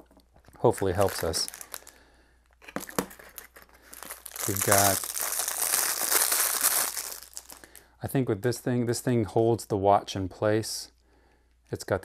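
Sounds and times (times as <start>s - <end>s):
plastic packaging crinkling: 0.5s - 7.8s.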